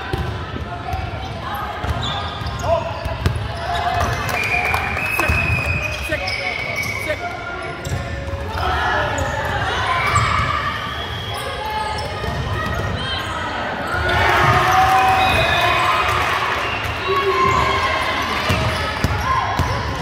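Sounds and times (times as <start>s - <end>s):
players calling and shouting: 0.0s - 20.0s.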